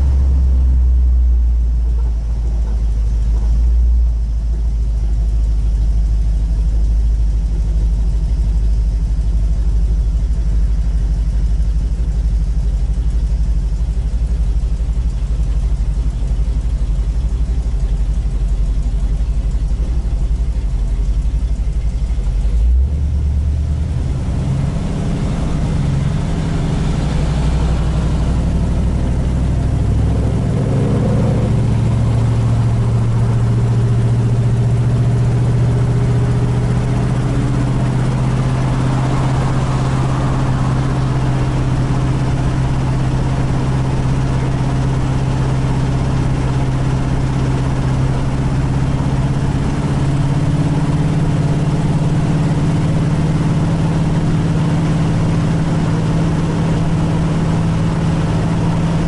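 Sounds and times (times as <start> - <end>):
car engine rumbling: 0.0 - 59.0.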